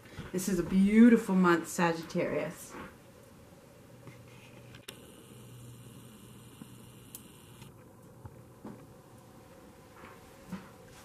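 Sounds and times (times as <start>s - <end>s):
low steady hum: 3.0s - 11.0s
camcorder zoom motor whirring: 4.8s - 7.7s
faint clicks: 6.5s - 8.2s.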